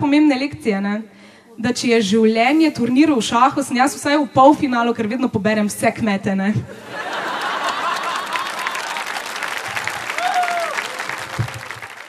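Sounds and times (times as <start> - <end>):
audience applauding: 7.0 - 12.0.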